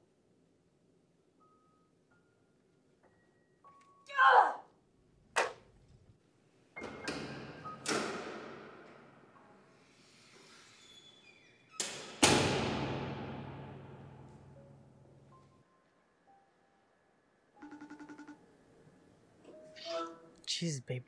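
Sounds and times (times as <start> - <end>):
woman crying out: 4.1 - 4.7.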